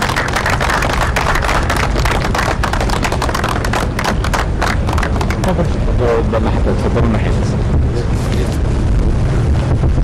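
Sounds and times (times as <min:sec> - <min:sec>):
crowd applauding: 0:00.0 - 0:05.8
low rumble: 0:00.0 - 0:10.0.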